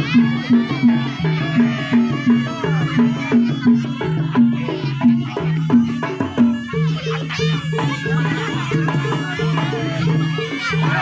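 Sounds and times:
high wavering melody: 0.0s - 11.0s.

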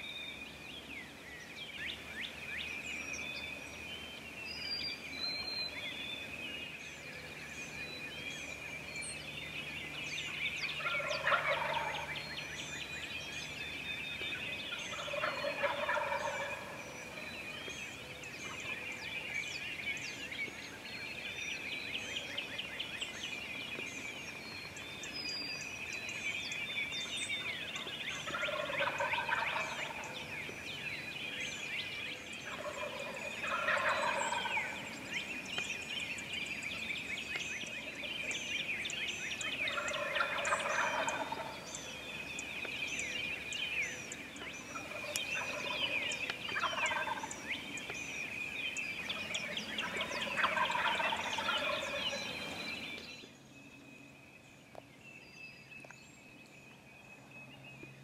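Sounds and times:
songbirds chirping: 0.0s - 58.0s
turkey gobbling: 10.8s - 12.2s, 14.9s - 17.2s, 28.1s - 30.2s, 32.4s - 35.0s, 39.6s - 41.6s, 44.6s - 47.6s, 49.1s - 52.6s.

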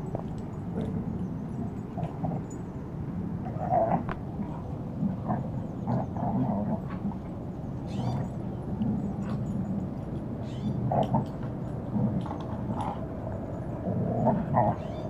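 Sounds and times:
dogs growling and snarling: 0.0s - 15.0s.

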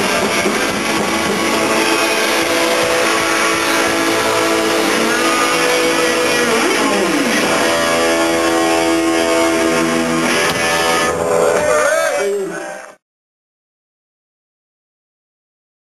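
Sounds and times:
distorted electric guitars: 0.0s - 13.0s.

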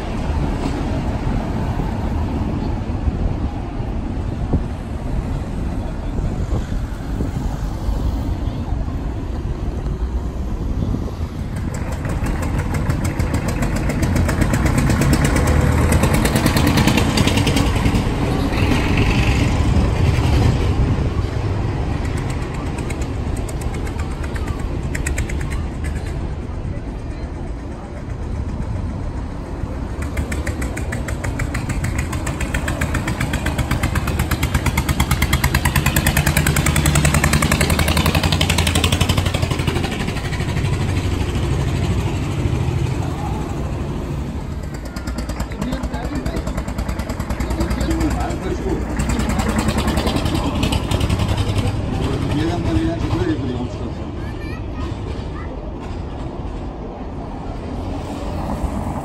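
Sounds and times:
vehicles driving over cobblestones: 0.0s - 59.0s
people talking: 21.1s - 29.1s, 44.7s - 56.0s.

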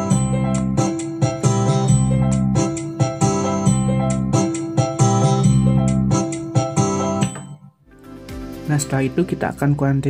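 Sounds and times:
keyboard bass and chords: 0.0s - 10.0s.

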